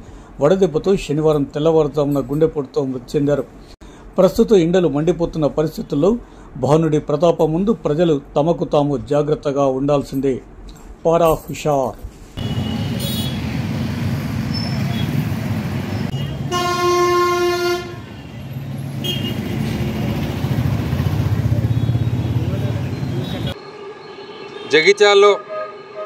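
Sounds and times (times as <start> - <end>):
vehicle horn: 12.4 - 13.6, 16.1 - 20.0, 21.4 - 26.0
motorcycles and cars passing: 12.4 - 26.0.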